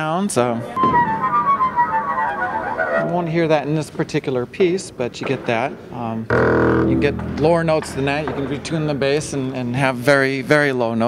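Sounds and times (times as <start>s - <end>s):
bowed double bass sliding notes: 0.8s - 4.0s, 6.3s - 9.8s.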